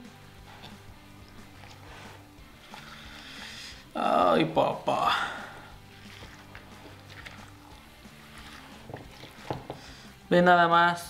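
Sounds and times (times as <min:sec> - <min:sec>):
faint background music: 0:00.0 - 0:11.0
spatula stirring creamy salad: 0:05.5 - 0:10.1.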